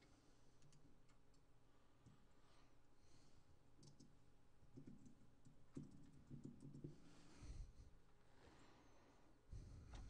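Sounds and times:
faint small clicks: 0.0 - 2.2, 3.8 - 4.2.

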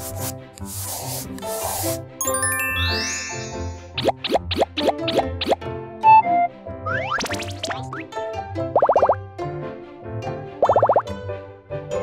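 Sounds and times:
marker scribbling: 0.0 - 2.0.

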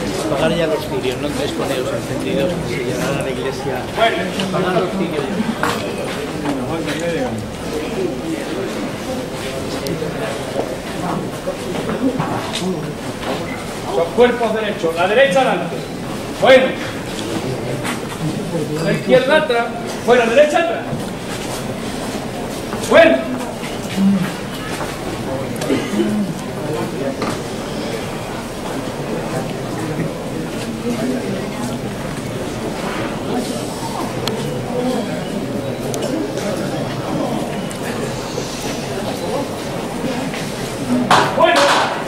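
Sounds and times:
street crowd murmur: 0.0 - 42.0.

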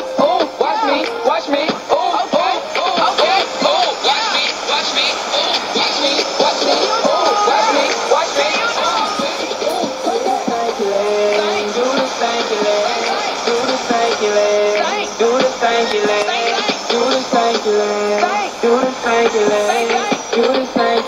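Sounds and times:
rap-pop song on radio speaker: 0.0 - 21.0.

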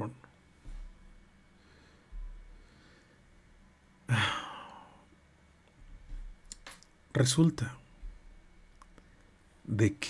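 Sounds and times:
man sighing: 4.1 - 5.1.

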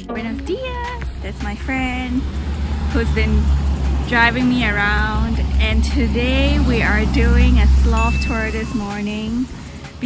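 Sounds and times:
steady low rumble: 0.0 - 10.0
woman talking: 0.0 - 10.0.

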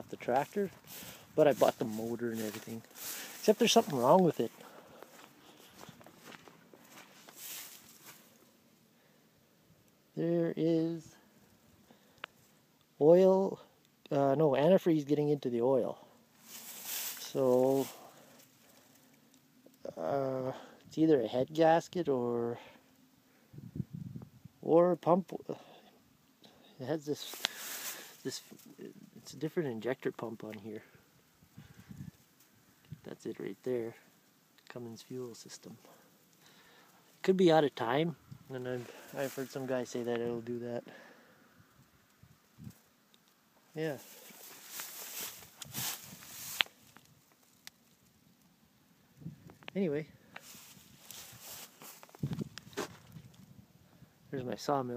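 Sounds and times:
footsteps crunching dry grass: 0.0 - 8.5, 16.4 - 19.1, 27.2 - 28.8, 37.2 - 40.8, 43.8 - 47.6, 50.4 - 53.4
faint outdoor hiss: 0.0 - 54.9.

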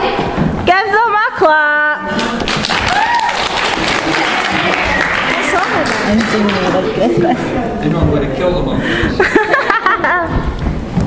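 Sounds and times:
crowd clapping: 2.1 - 7.0.

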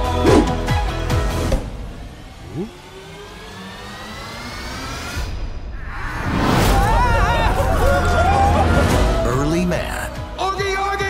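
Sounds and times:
rising whine: 2.0 - 6.3.

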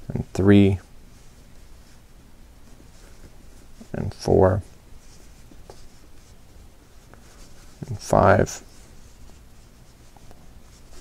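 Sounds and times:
yarn rustling through crochet hook: 0.0 - 11.0.

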